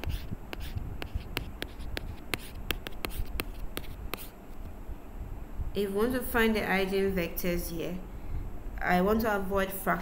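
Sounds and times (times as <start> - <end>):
stylus tapping and scratching tablet: 0.0 - 4.7.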